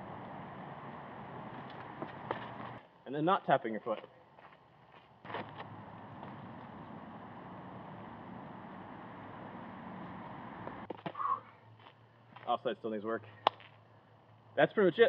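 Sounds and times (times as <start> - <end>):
outdoor background noise: 0.0 - 15.0
footsteps on gravel: 1.5 - 2.8, 3.8 - 6.8.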